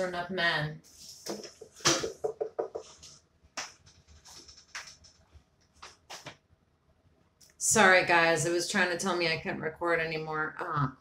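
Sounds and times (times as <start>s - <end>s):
rustles and knocks at desk: 1.2s - 6.4s.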